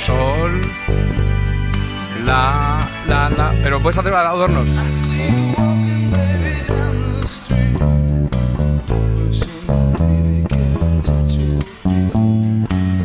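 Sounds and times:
electric bass guitar: 0:00.0 - 0:13.0.

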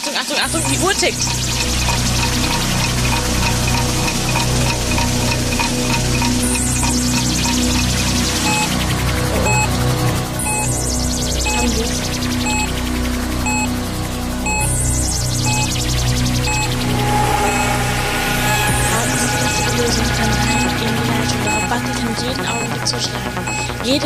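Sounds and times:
electronic music with pulsing beat: 0:00.0 - 0:24.0.

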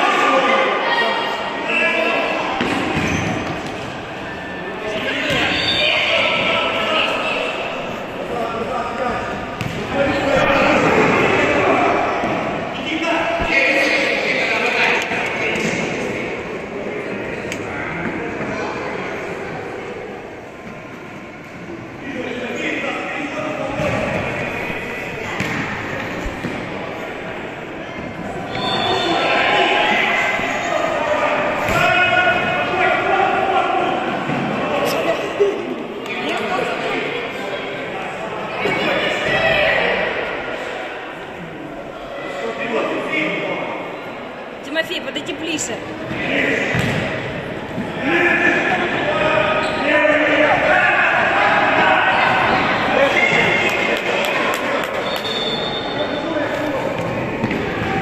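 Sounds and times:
indistinct shouting voices: 0:47.9 - 0:58.0.

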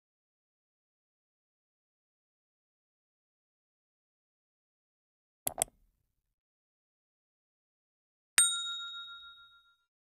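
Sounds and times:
bright bell ding: 0:08.4 - 0:09.9.

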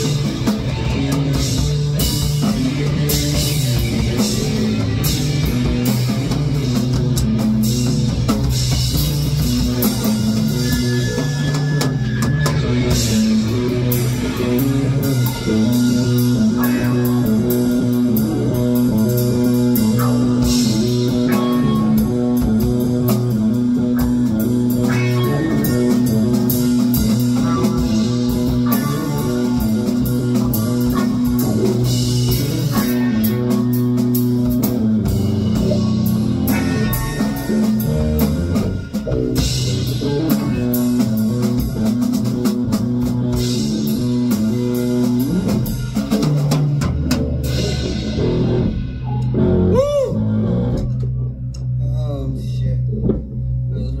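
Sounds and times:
electric guitars: 0:00.0 - 0:51.8
drum kit: 0:00.0 - 0:54.0.

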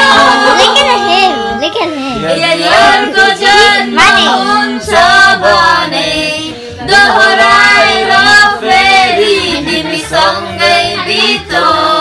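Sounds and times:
man and women singing together: 0:00.0 - 0:12.0.

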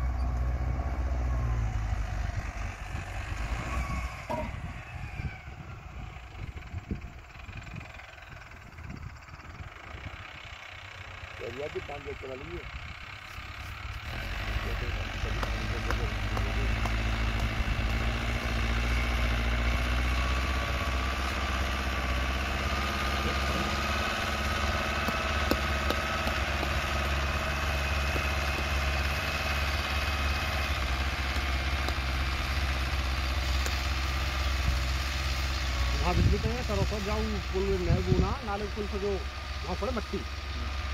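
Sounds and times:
tractor diesel engine under load: 0:00.0 - 0:40.9.

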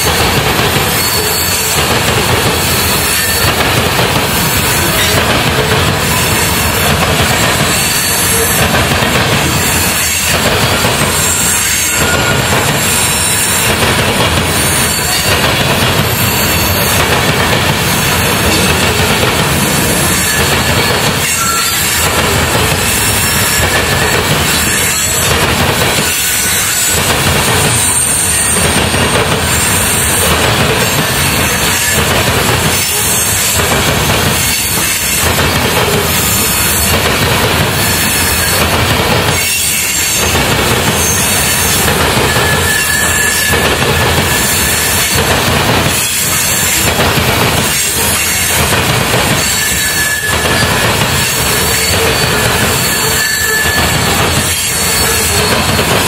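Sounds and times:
high wheel squeals: 0:00.0 - 0:05.3, 0:06.0 - 0:13.8, 0:14.4 - 0:17.2, 0:17.8 - 0:37.0, 0:37.7 - 0:45.2, 0:47.6 - 0:56.0
train wheels rumbling and clattering: 0:00.0 - 0:56.0.

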